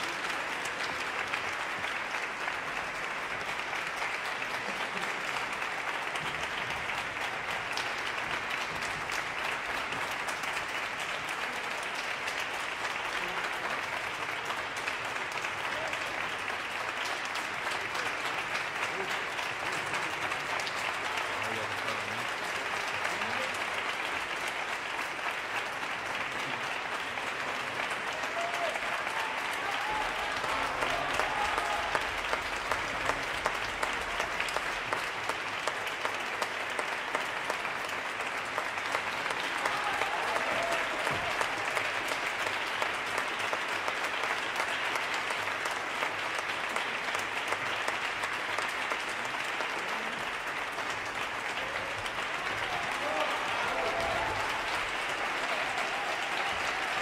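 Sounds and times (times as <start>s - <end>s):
audience applause: 0.0s - 57.0s.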